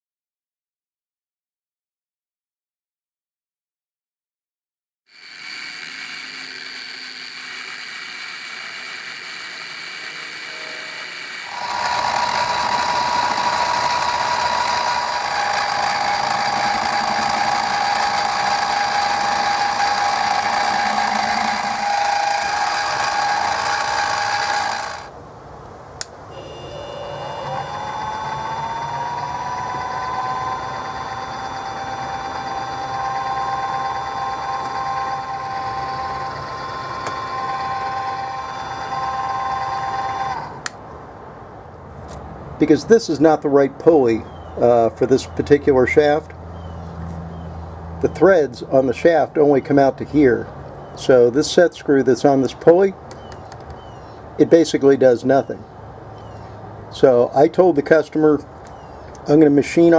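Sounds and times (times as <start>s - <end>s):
milling machine spindle whine: 5.1s - 25.1s, 26.3s - 40.7s.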